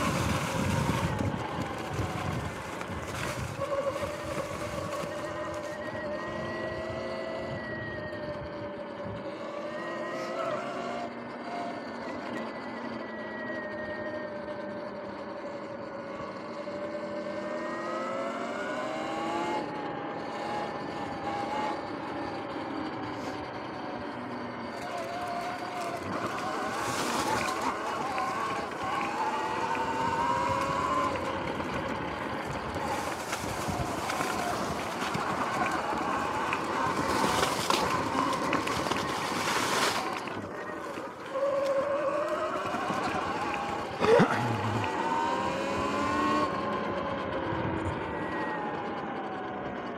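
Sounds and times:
tyre noise: 0.0s - 6.6s, 24.6s - 46.4s
electric motor whining: 0.0s - 49.9s.

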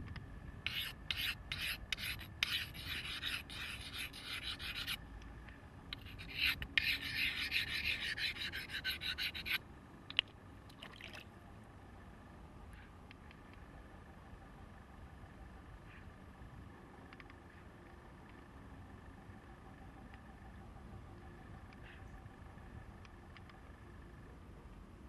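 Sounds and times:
stone grinding on wet stone: 0.7s - 5.0s, 6.0s - 9.6s.

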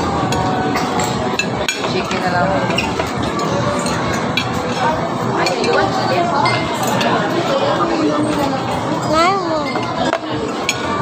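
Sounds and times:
restaurant chatter: 0.0s - 11.0s
cutlery clinking on plates: 0.2s - 7.4s.

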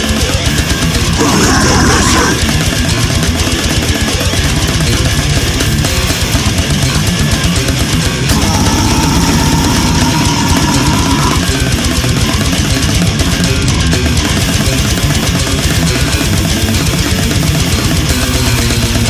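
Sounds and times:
death metal music: 0.0s - 19.0s
distorted guitars: 0.0s - 19.0s
fast dense drumming: 0.0s - 19.0s.

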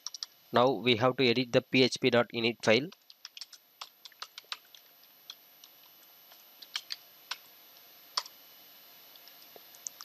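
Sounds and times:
computer keyboard keystrokes: 0.0s - 0.3s, 2.9s - 7.4s
faint high whine: 0.0s - 10.0s.

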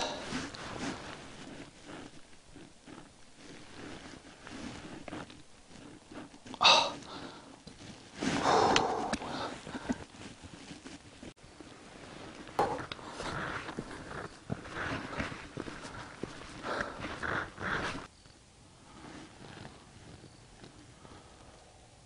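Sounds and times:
tripod handling rustling and scraping: 0.0s - 18.1s, 18.9s - 20.9s.

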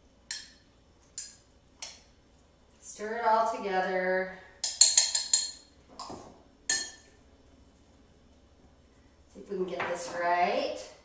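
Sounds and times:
spoon clinking against a mug: 4.6s - 5.7s, 6.7s - 7.1s.

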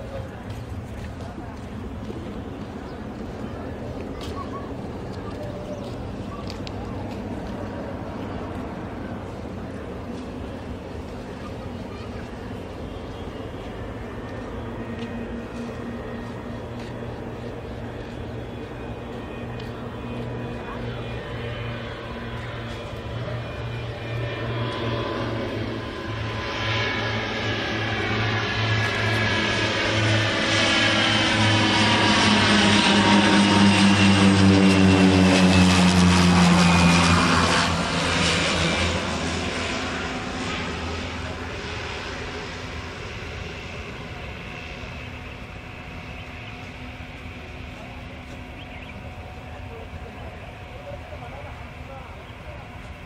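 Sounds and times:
propeller plane passing overhead: 0.0s - 53.0s.

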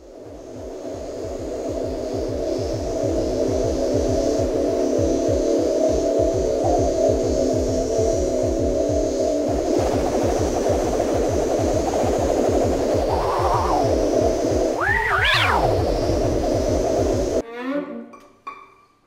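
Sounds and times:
rapid low pulsing: 0.1s - 17.4s.

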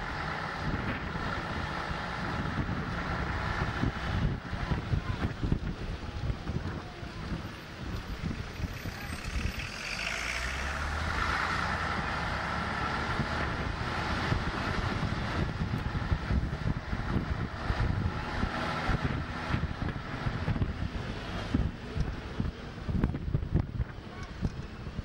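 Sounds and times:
wind buffeting microphone: 0.0s - 9.8s, 11.0s - 25.0s
bus engine whine: 0.0s - 25.0s.

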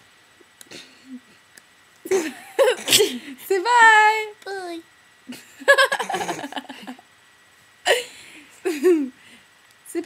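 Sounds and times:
girl laughing: 2.1s - 3.2s, 5.3s - 7.0s, 7.9s - 9.2s.

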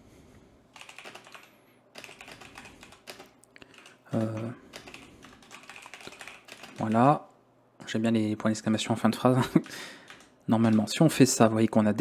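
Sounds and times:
typing on computer keyboard: 0.8s - 7.2s, 9.5s - 11.0s.

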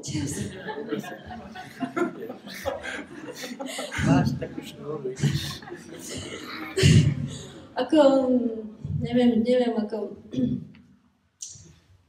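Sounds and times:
woman speaking into microphone: 0.0s - 0.7s, 7.8s - 10.7s.

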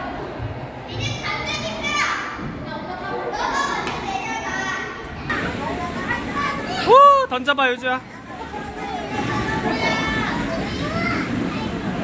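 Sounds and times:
children's voices and play: 0.0s - 7.4s, 8.0s - 12.0s.

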